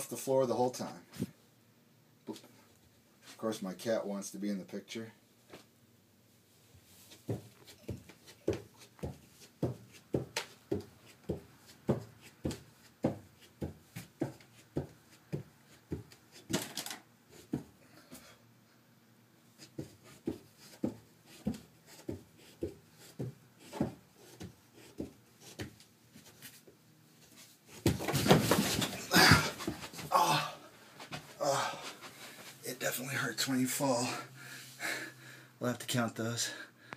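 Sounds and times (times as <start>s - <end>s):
body falling on carpeted stairs: 7.1s - 16.6s, 27.7s - 31.9s
man breathing hard: 29.0s - 30.8s, 31.4s - 32.5s, 34.1s - 35.6s.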